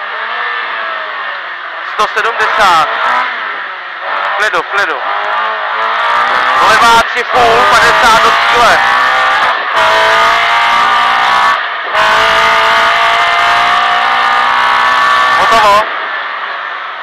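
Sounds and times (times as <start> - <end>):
rally car engine at high revs: 0.0 - 17.0.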